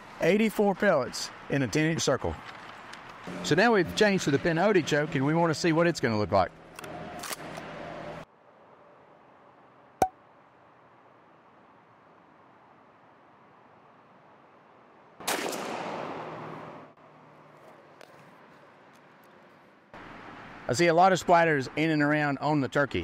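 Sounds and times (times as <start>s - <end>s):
shotgun shot with echo: 15.2s - 16.0s.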